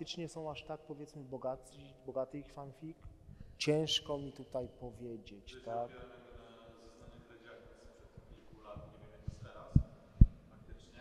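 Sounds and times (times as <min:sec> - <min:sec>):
microphone handling thumps: 0:08.1 - 0:10.5.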